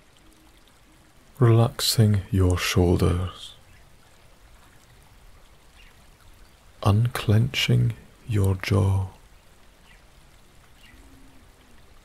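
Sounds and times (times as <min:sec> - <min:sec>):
small stream trickling: 0:00.0 - 0:12.0
soft-spoken voice: 0:01.4 - 0:03.6, 0:06.8 - 0:09.2.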